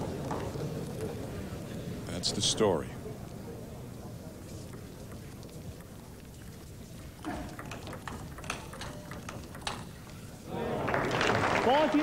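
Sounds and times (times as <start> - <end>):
table tennis ball ticks: 7.4 - 10.2.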